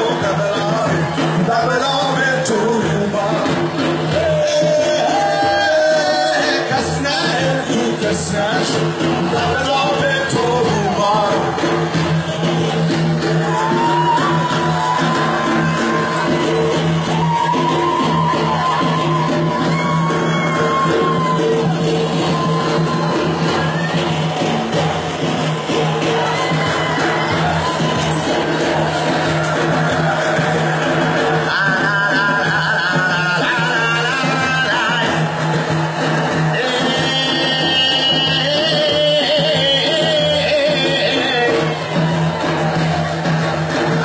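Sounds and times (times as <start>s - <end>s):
frame drums: 0.0s - 44.0s.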